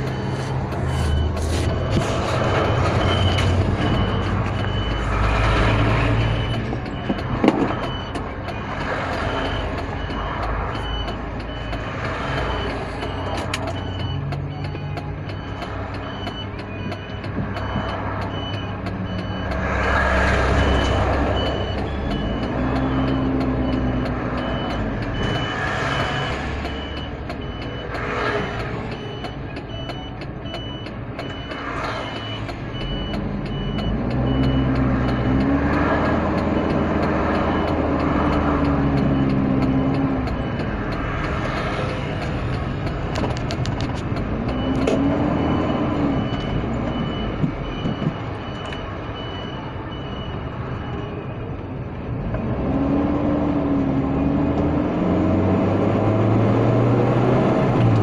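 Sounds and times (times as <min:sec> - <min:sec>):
vehicle engine and road noise: 0:00.0 - 0:58.0.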